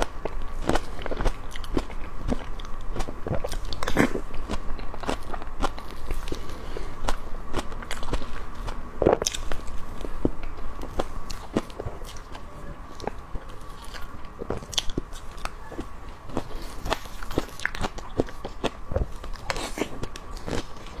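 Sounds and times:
person chewing with wet mouth clicks: 0.0s - 12.4s, 13.0s - 21.0s
faint high hum: 0.0s - 21.0s.

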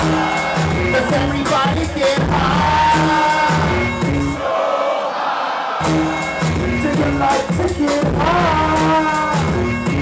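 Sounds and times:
hip hop beat with heavy bass: 0.0s - 4.4s, 5.8s - 10.0s
vocals over a beat: 0.0s - 4.4s, 6.4s - 10.0s
crowd noise: 0.0s - 10.0s.

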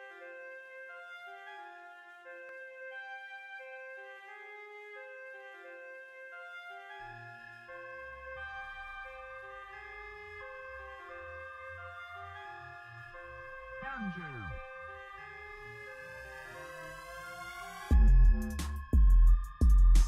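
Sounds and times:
flute melody: 0.0s - 18.6s
falling pitch sweep: 13.8s - 14.9s
deep bass line: 17.9s - 20.0s.

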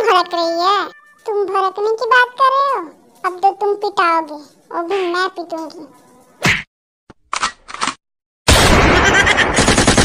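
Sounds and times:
cartoon machine-gun fire: 8.5s - 10.0s.

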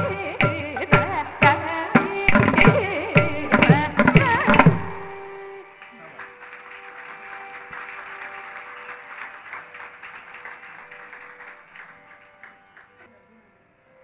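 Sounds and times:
audience clapping: 5.6s - 13.1s.

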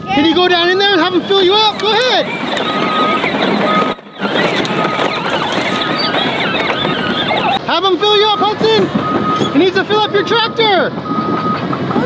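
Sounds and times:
backup alarm beeping: 0.0s - 11.7s
heavy machinery running: 0.0s - 12.0s.

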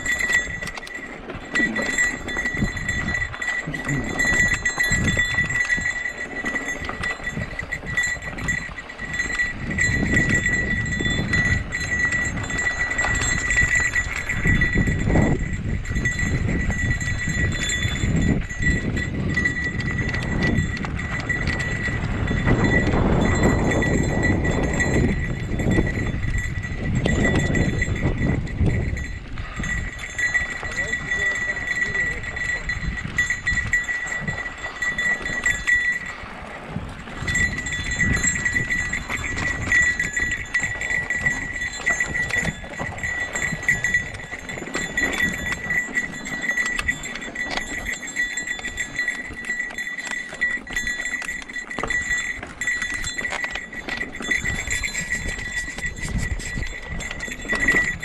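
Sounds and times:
tyres rolling over dirt and rocks: 0.0s - 15.0s, 16.0s - 31.1s, 32.3s - 58.0s
bike rattling: 0.0s - 58.0s
wind buffeting microphone: 0.0s - 58.0s.

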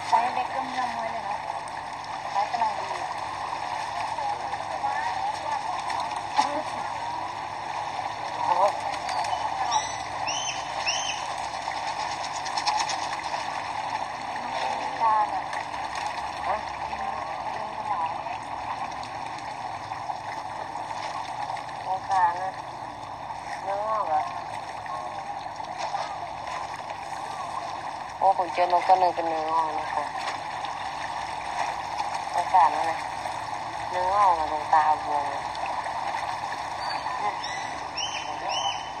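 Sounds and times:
outdoor noise: 0.0s - 39.0s.

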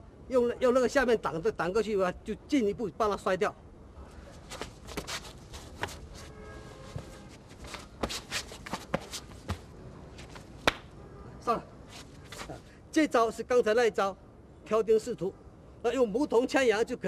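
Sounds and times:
shoes scuffing on stone: 4.4s - 10.8s
slaps and knocks of blows: 10.6s - 10.9s.

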